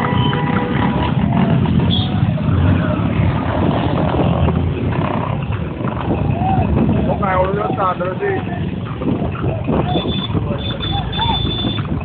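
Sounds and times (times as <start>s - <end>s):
motorcycle engines: 0.0s - 12.0s
road traffic rumble: 0.0s - 12.0s.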